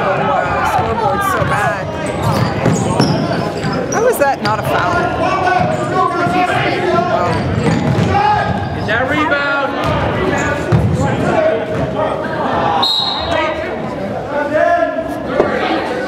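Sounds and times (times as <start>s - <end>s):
spectators' voices: 0.0s - 16.0s
basketball bouncing on hardwood: 7.3s - 8.7s
referee's whistle: 12.8s - 13.4s.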